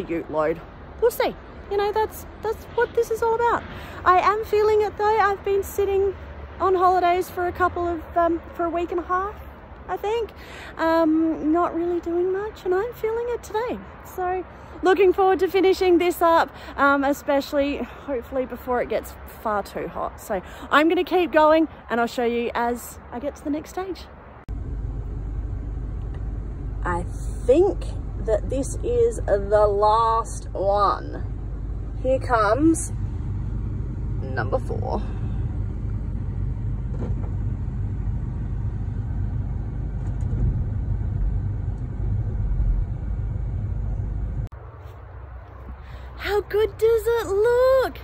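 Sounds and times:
outdoor background: 0:00.0 - 0:48.0
engine rumble from inside cab: 0:24.4 - 0:44.6.

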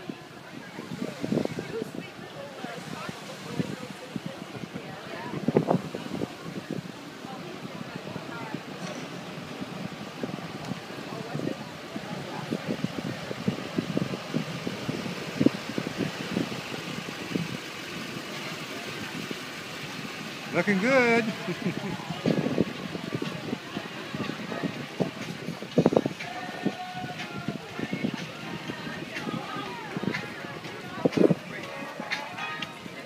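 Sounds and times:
bystanders chattering: 0:00.0 - 0:33.0
vehicles running slowly: 0:00.0 - 0:33.0
wind buffeting microphone: 0:00.0 - 0:33.0.

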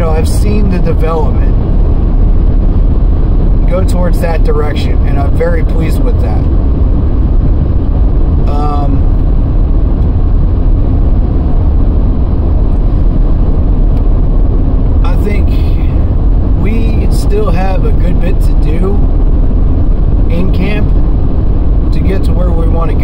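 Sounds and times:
road rumble inside moving car: 0:00.0 - 0:23.0.

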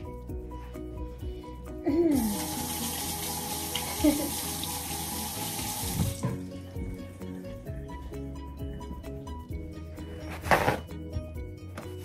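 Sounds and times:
tap water running into sink: 0:02.2 - 0:06.5.

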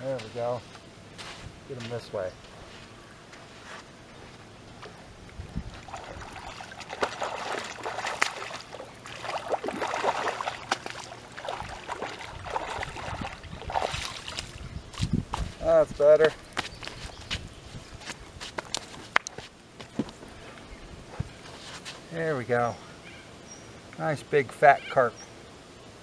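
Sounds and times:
fish splashing in shallow water: 0:04.8 - 0:15.2.

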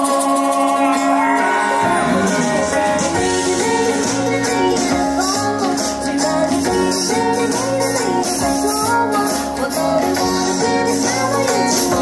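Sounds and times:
guitar: 0:00.0 - 0:12.0.

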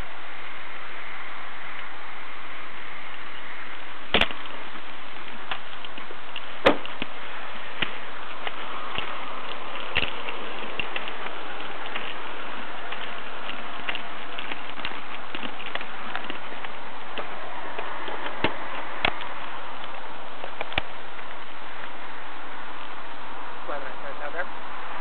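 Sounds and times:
static hiss: 0:00.0 - 0:25.0
crackling clicks: 0:04.1 - 0:22.0.

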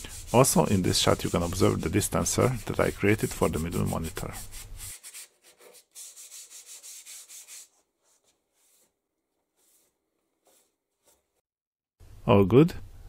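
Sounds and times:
hand sanding board edge: 0:00.0 - 0:11.4.

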